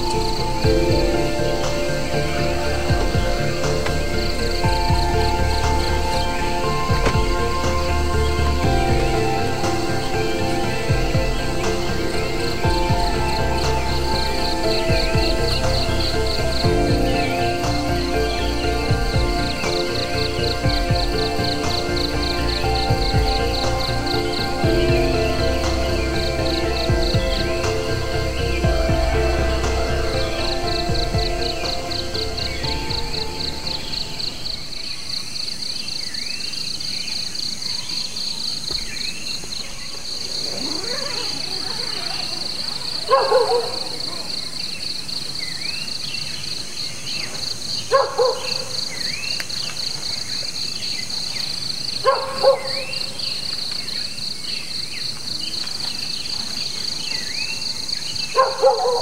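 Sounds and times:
background music: 0:00.0 - 0:59.0
crickets chirring: 0:00.0 - 0:59.0
frog calling: 0:39.7 - 0:44.8.

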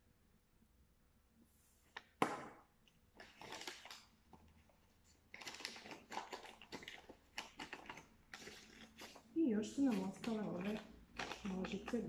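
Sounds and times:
paper rustling and crinkling: 0:03.1 - 0:12.0.

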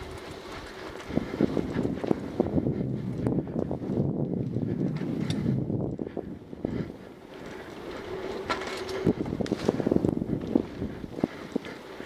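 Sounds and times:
bike rattling: 0:00.0 - 0:12.0
bike tyres rumbling on dirt: 0:00.0 - 0:12.0.

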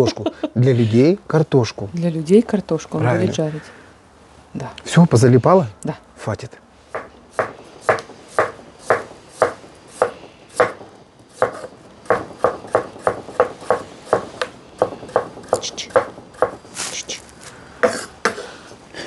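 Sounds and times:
knife chopping potatoes on board: 0:07.0 - 0:10.8, 0:11.4 - 0:16.6.

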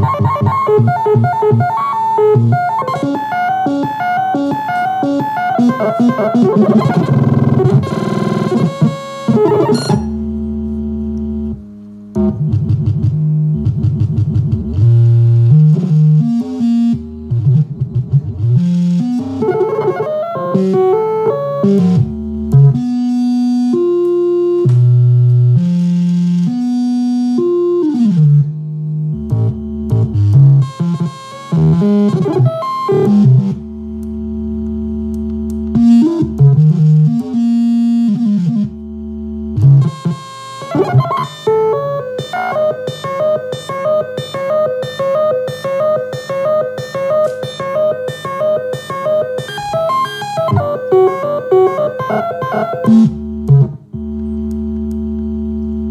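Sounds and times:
glitch synthesizer tones: 0:00.0 - 0:11.6, 0:12.2 - 0:24.8, 0:25.5 - 0:55.9.

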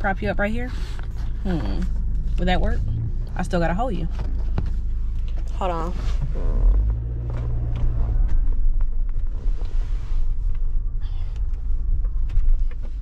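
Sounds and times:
car cabin rumble: 0:00.0 - 0:13.0
hum: 0:00.0 - 0:13.0.

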